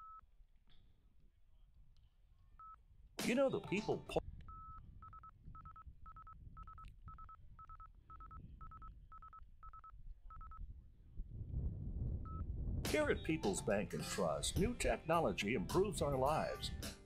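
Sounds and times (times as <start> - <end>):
short electronic beeps: 4.5 - 10.6.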